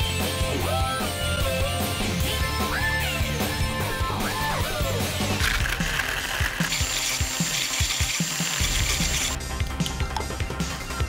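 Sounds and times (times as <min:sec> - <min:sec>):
blender motor running: 0:04.9 - 0:09.4.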